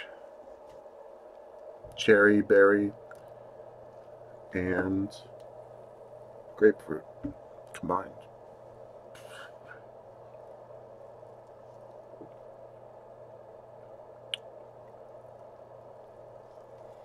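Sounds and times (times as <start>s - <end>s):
low background hum: 0.0s - 17.0s.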